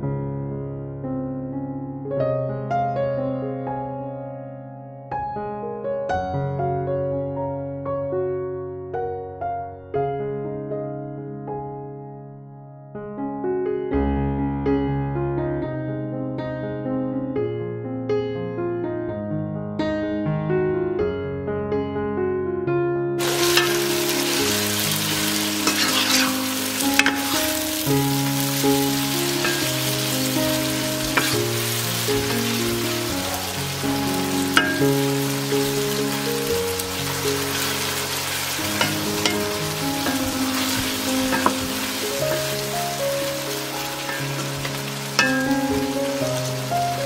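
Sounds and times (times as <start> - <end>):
soft piano music: 0.0 - 47.0
wooden spoon stirring: 23.2 - 35.3, 37.4 - 46.0
vegetables sizzling in oil: 23.2 - 47.0.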